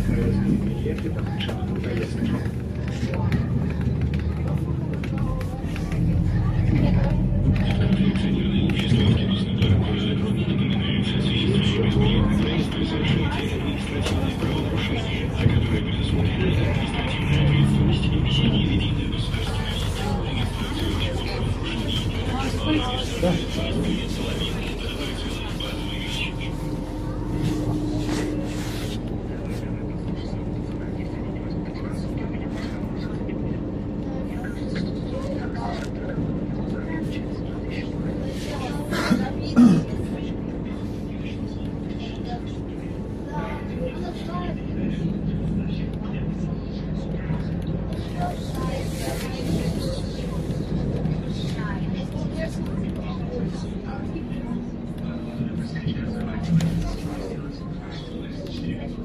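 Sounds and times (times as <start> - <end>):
bus engine hum: 0.0 - 59.0
faint passenger voices: 0.0 - 59.0.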